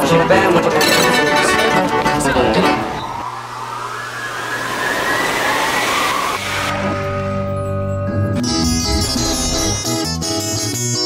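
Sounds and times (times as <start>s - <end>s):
music with plucked strings: 0.0s - 3.0s, 7.7s - 11.0s
rising hissing sweep: 2.5s - 8.0s.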